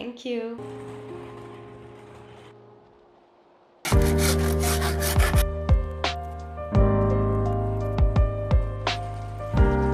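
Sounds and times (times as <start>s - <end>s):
hoof rasp filing a hoof: 3.9s - 5.4s.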